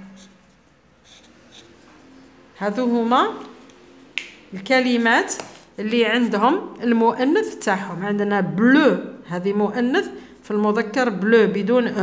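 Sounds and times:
highlighter scratching on paper: 0.0 - 2.5.

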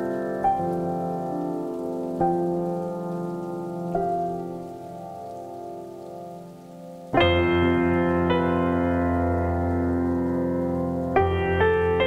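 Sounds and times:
solo piano chords: 0.0 - 12.0.

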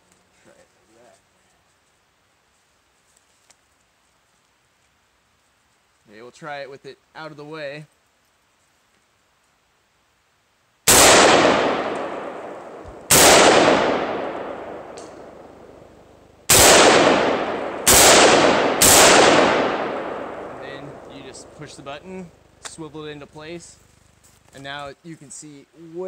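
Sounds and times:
rifle shots echoing: 10.9 - 21.9.

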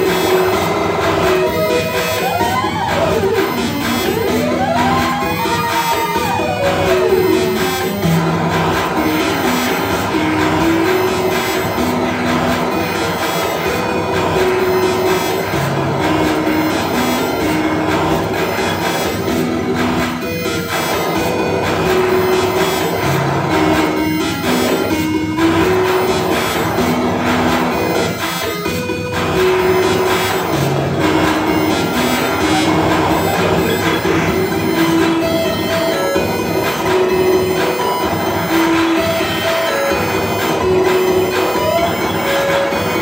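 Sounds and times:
dense noisy electronic wash: 0.0 - 43.0
slow electronic melody: 0.0 - 43.0.

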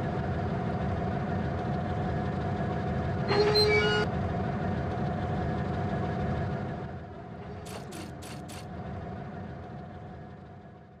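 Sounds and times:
low rumble with hum: 0.0 - 11.0.

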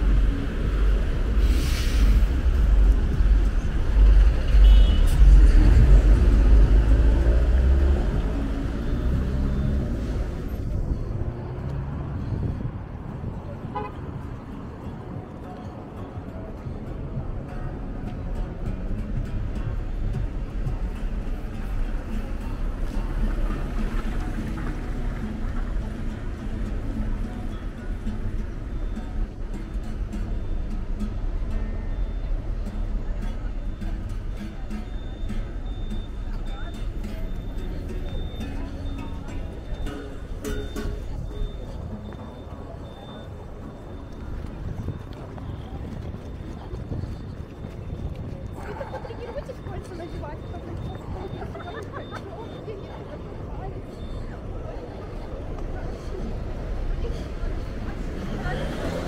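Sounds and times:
heavy vehicle engine rumbling: 0.0 - 59.0
hum of passing cars: 0.0 - 59.0.

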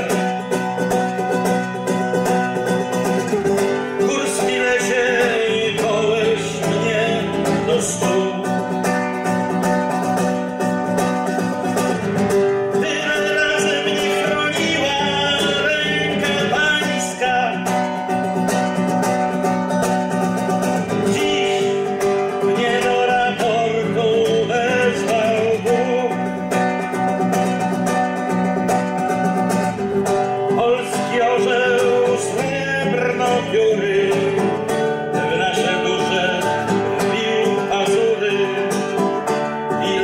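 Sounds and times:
man singing: 0.0 - 9.6, 11.3 - 18.9, 20.1 - 27.4, 30.1 - 40.0
classical guitar strumming: 0.0 - 40.0.

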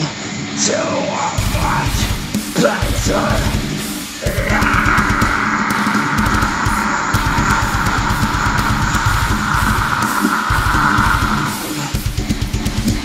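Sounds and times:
distorted electric guitar: 1.4 - 13.0
fast bass drum strokes: 1.4 - 13.0.

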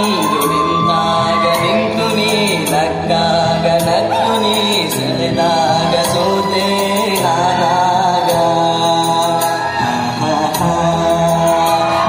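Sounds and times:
man singing through loudspeaker: 0.0 - 12.0.

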